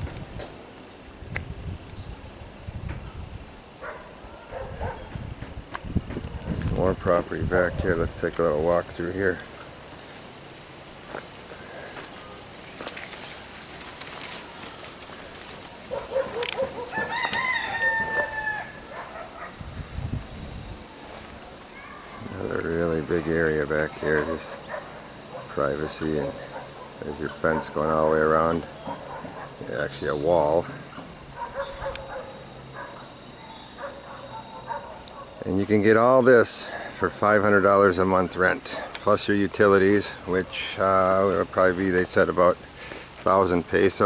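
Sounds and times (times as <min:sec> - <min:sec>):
rooster crowing: 0:15.9 - 0:19.5.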